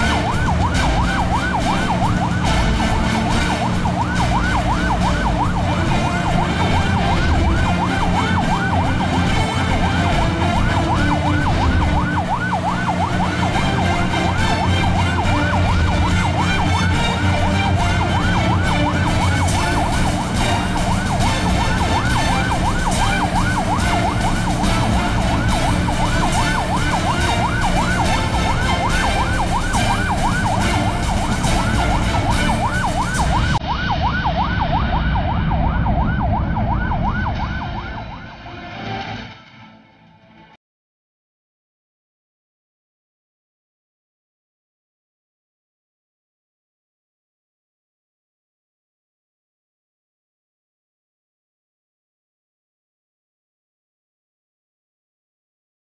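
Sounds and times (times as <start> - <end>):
boat siren yelping: 0.0 - 38.3
steady low rumble: 13.4 - 38.8.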